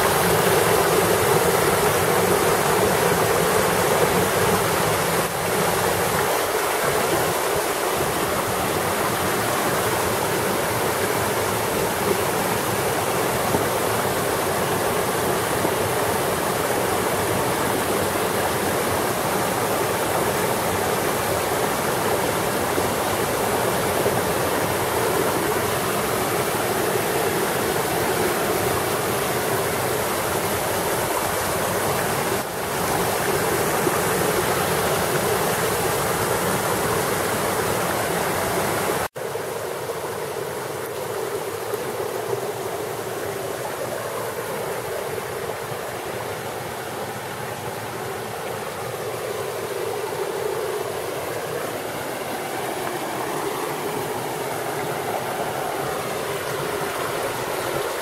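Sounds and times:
stream splashing over boulders: 0.0s - 58.0s.

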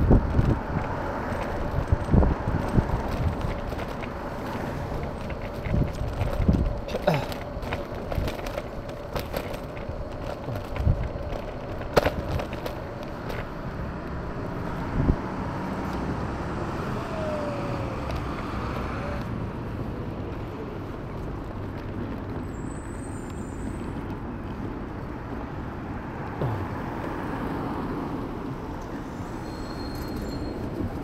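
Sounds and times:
city street traffic: 0.0s - 31.0s.

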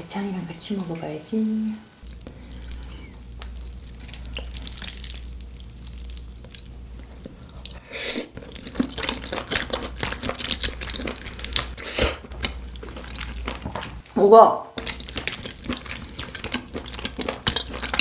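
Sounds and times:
steady low hum: 0.0s - 18.0s
wet chewing mouth sounds: 2.0s - 14.0s, 14.8s - 18.0s.

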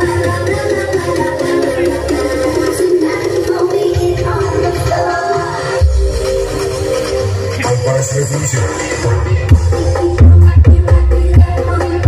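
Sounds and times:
loud music over sound system: 0.0s - 12.0s.

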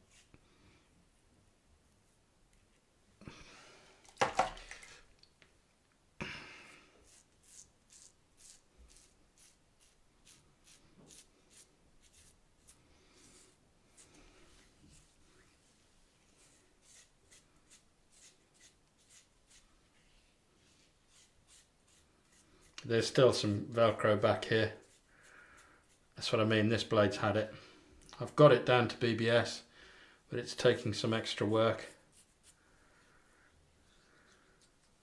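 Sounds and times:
razor scraping stubble: 7.0s - 14.2s, 16.4s - 19.7s, 21.1s - 22.9s.

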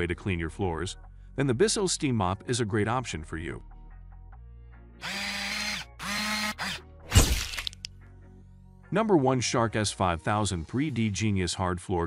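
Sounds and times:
faint background music: 0.0s - 12.0s
drill-like whirring: 5.0s - 7.8s.

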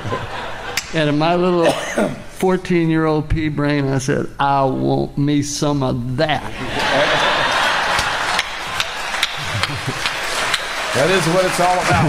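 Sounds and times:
audience laughter: 0.0s - 1.0s, 6.5s - 12.0s
hand claps: 7.6s - 12.0s.

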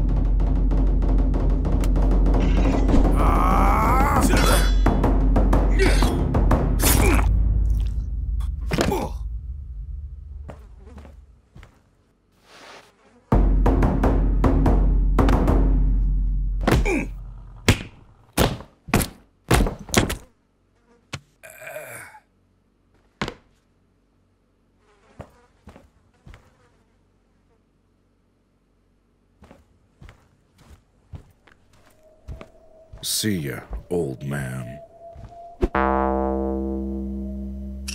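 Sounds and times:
deep booming hits: 0.0s - 10.5s, 13.4s - 17.7s, 34.9s - 37.9s.

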